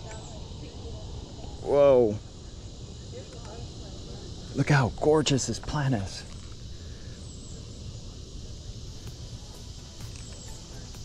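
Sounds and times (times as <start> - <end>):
high insect chorus: 0.0 - 11.0.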